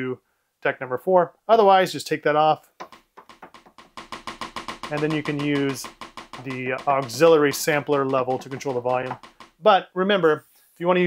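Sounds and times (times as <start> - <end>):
rapid rim-shot drum hits: 3.7 - 9.6.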